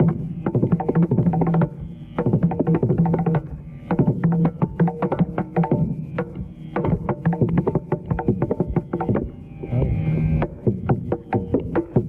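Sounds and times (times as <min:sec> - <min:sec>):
fast hand-drum strokes: 0:00.0 - 0:12.0
ringing low drum bass note: 0:06.8 - 0:12.0.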